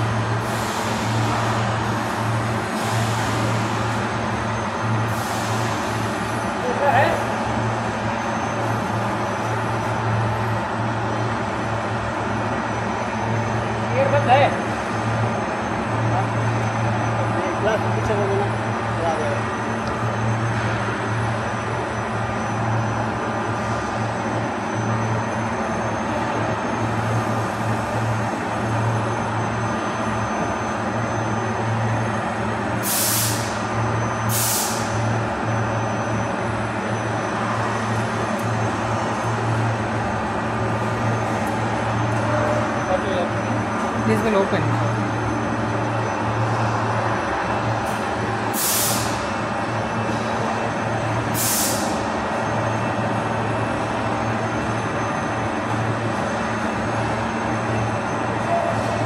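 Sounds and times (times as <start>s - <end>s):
factory machinery humming: 0.0s - 59.0s.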